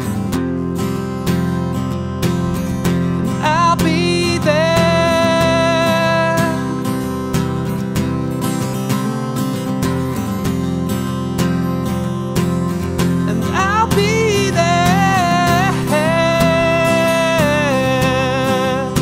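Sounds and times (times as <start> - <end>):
acoustic guitar strumming: 0.0 - 19.0
man singing: 2.5 - 7.0, 13.2 - 19.0.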